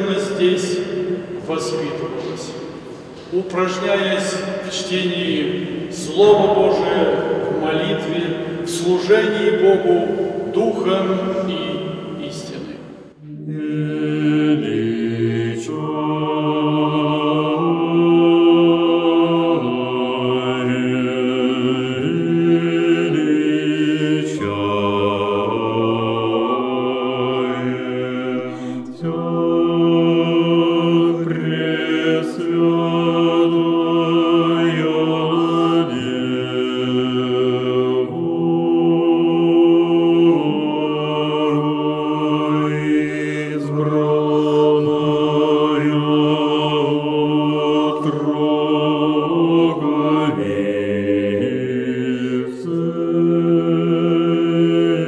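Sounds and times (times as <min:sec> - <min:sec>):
choir singing chant in harmony: 0:00.0 - 0:55.0.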